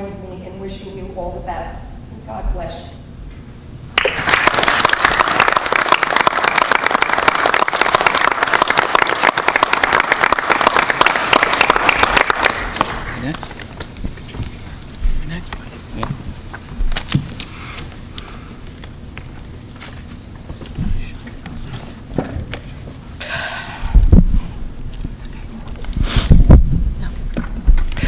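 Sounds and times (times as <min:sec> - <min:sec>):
audience applauding: 0:04.0 - 0:13.8.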